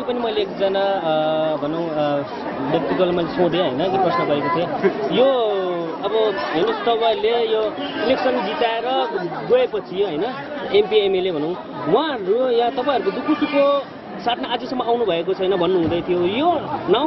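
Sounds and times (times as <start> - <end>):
man talking: 0.0 - 17.0.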